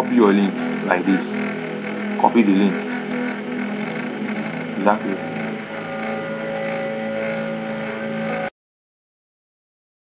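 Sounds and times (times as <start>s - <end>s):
steady mechanical hum: 0.0s - 8.5s.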